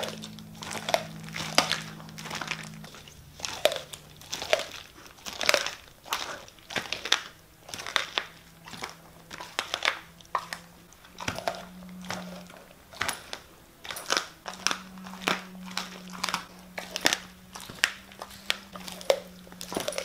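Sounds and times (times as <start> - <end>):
dog chewing meat: 0.0 - 20.0
plastic bag crinkling: 0.0 - 20.0.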